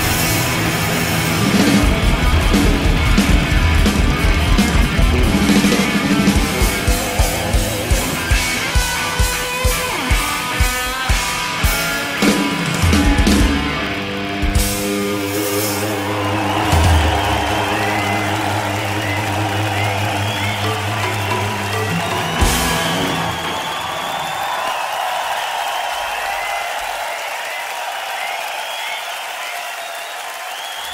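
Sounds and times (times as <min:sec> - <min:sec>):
electronic rock band playing: 0:00.0 - 0:24.8
crowd cheering: 0:00.0 - 0:30.9.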